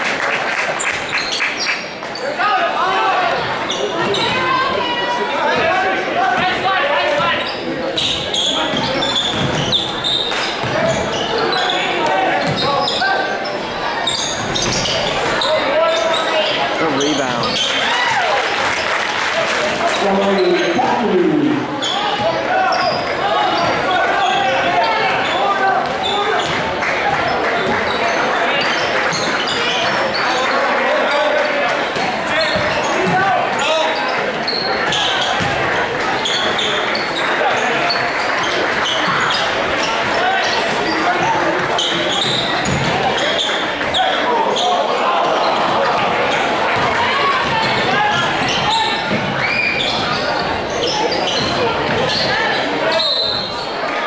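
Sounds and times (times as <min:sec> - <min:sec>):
spectators chattering: 0:00.0 - 0:54.0
basketball bouncing on wooden floor: 0:08.8 - 0:09.8, 0:41.9 - 0:43.0.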